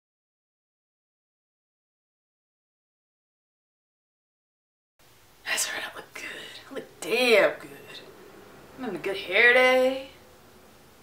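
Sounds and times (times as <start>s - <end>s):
woman whispering breathily: 5.5s - 6.8s.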